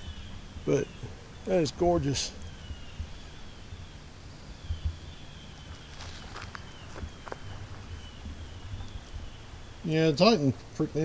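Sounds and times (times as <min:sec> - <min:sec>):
low wind rumble: 0:00.0 - 0:11.0
soft footsteps: 0:05.6 - 0:09.2.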